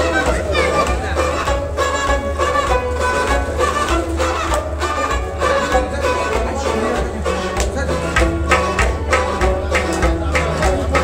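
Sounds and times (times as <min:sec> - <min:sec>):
hand drum beat: 0:00.0 - 0:11.0
harmonium melody: 0:00.0 - 0:11.0.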